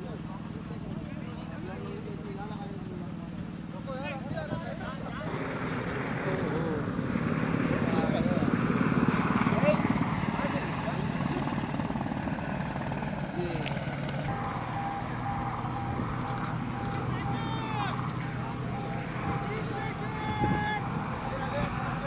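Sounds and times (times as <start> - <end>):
people talking: 0.0 - 8.6, 9.4 - 11.7, 13.4 - 13.8, 16.8 - 22.0
helicopter rotor beating: 0.0 - 22.0.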